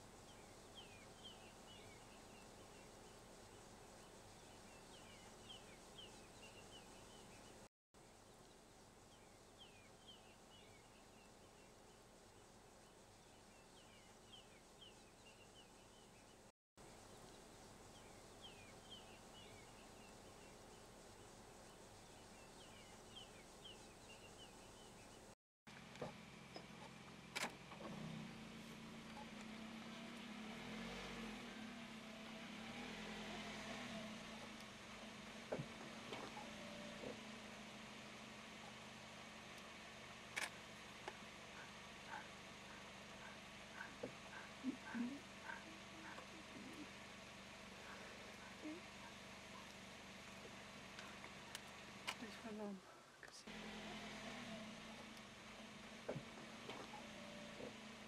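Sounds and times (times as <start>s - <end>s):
vehicle engine idling: 0.0s - 58.0s
bird chirps: 0.2s - 7.7s, 9.1s - 16.5s, 17.1s - 25.3s, 41.6s - 47.0s
scattered clicks: 40.3s - 46.3s.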